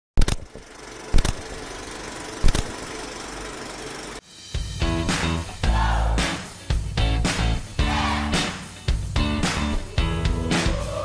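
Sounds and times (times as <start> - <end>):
steady mechanical hum: 0.2 - 4.2.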